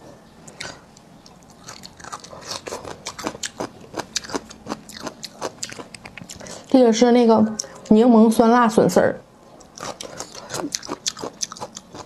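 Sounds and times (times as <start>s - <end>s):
crunchy food being chewed: 0.4s - 6.7s, 9.6s - 12.0s.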